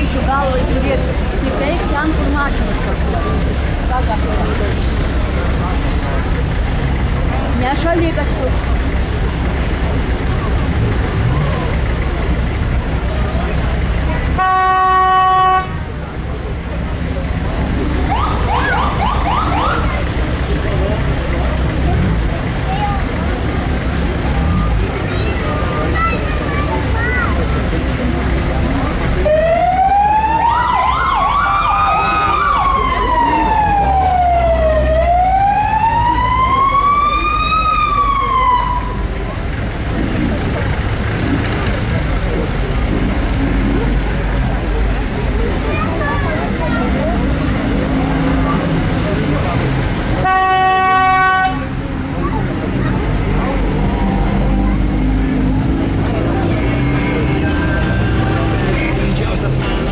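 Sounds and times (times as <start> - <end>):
car engines idling and passing: 0.0 - 59.9
crowd noise: 0.0 - 59.9
horn blast: 14.3 - 15.9, 50.2 - 51.8
emergency siren wailing: 18.0 - 20.1, 29.2 - 39.3.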